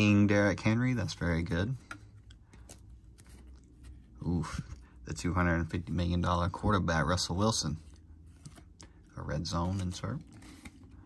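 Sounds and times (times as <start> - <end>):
low room hum: 0.0 - 11.0
trading cards clicking and rustling: 1.0 - 6.3, 7.8 - 11.0.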